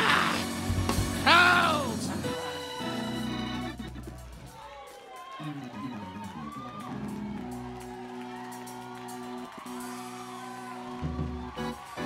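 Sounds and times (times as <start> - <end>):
sustained organ chord: 0.0 - 4.3.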